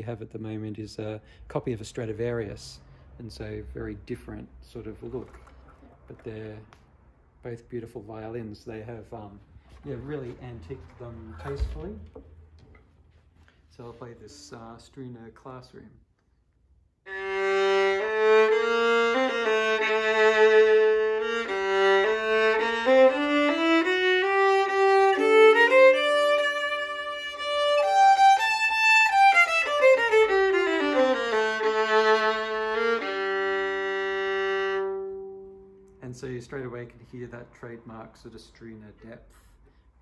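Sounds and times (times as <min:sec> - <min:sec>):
violin bowed melody: 0:17.1 - 0:36.0.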